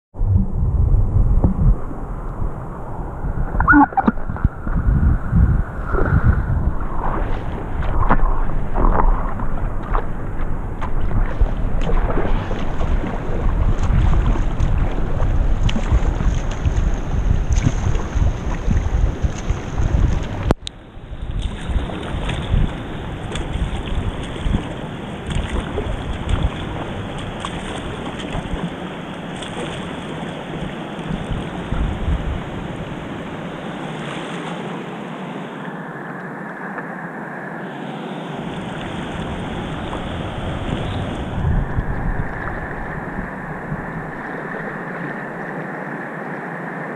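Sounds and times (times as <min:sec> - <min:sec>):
wind rumbling on microphone: 0:00.1 - 0:34.8, 0:35.4 - 0:46.9
flowing river water: 0:00.2 - 0:46.9
kayak paddle splashes: 0:03.6 - 0:46.9.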